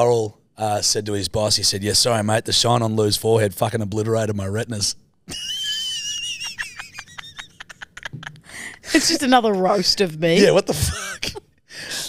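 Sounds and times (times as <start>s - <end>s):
woman squealing laughter: 5.3s - 8.5s.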